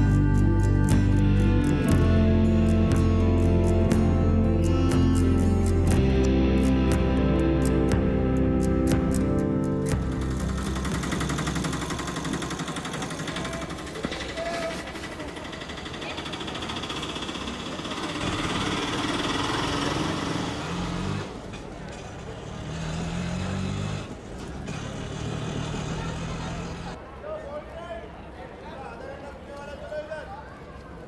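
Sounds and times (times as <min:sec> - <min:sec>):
traffic noise: 0:07.7 - 0:31.0.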